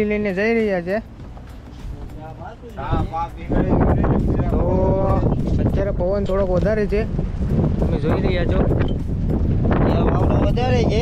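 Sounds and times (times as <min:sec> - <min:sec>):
wind rumbling on microphone: 0:01.1 - 0:11.0.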